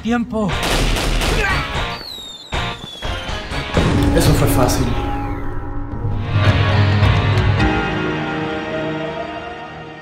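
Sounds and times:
soundtrack music: 0:00.4 - 0:10.0.

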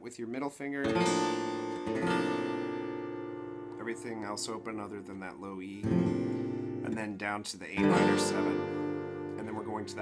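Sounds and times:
acoustic guitar strumming chord: 0:01.0 - 0:05.1, 0:05.8 - 0:07.0, 0:07.8 - 0:10.0.

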